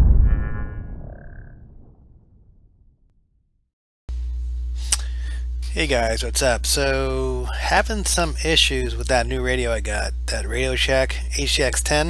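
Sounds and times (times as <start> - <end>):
deep low boom: 0.0 - 3.1.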